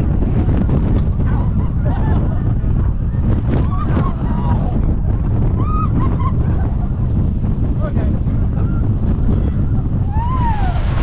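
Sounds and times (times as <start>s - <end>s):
roller coaster train rumble: 0.0s - 11.0s
wind buffeting: 0.0s - 11.0s.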